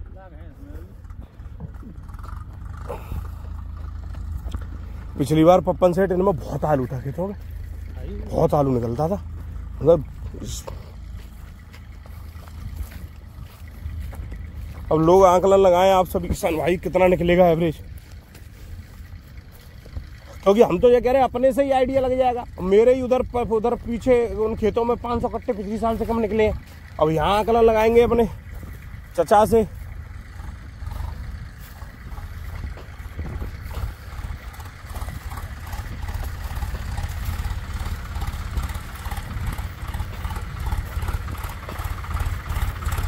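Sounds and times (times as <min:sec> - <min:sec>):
wind buffeting microphone: 0:28.3 - 0:42.9.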